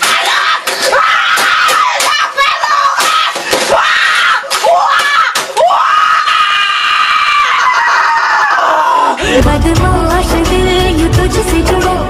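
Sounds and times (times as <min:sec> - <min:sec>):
boy screaming: 0:00.1 - 0:09.2.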